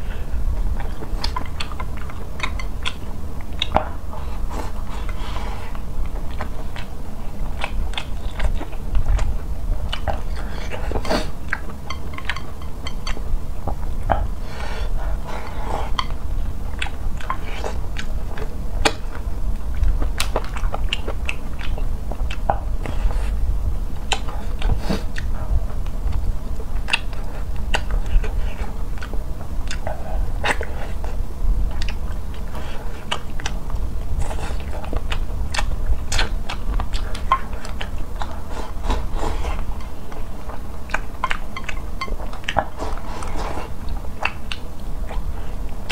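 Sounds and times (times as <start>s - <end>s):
close chewing and biting: 0.5s - 45.9s.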